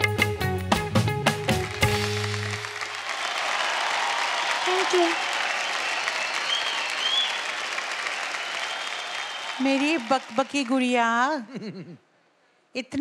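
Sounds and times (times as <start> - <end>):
audience applauding: 1.2 - 11.1.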